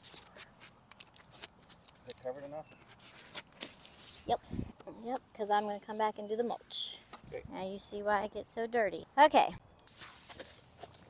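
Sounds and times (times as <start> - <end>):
soil scraping and crunching: 9.9 - 11.0.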